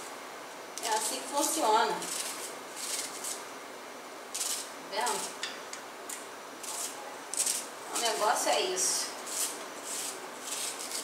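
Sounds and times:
knife slicing onion: 0:00.8 - 0:03.4, 0:06.6 - 0:08.3, 0:09.2 - 0:11.0.

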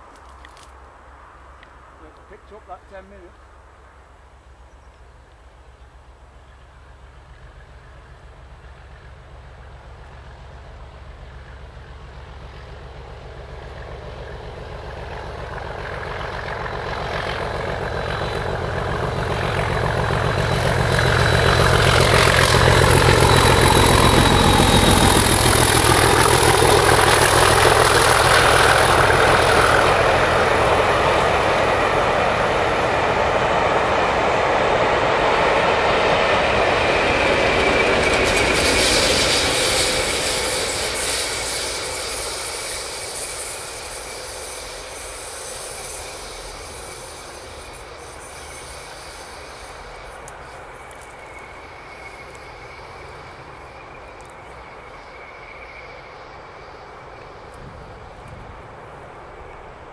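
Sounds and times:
diesel locomotive working under load: 0:00.0 - 0:59.9.

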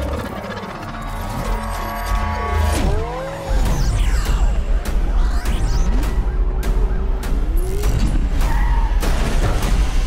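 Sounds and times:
dramatic music: 0:00.0 - 0:10.0.

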